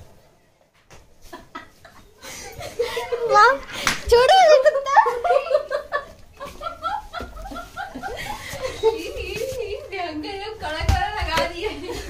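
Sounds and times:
people chuckling: 0:01.2 - 0:03.8, 0:04.8 - 0:10.0, 0:11.5 - 0:12.0.

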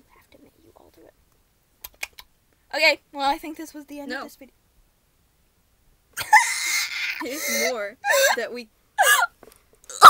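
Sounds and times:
girl talking: 0:02.7 - 0:04.5, 0:07.2 - 0:08.7
girl laughing: 0:06.2 - 0:08.4.

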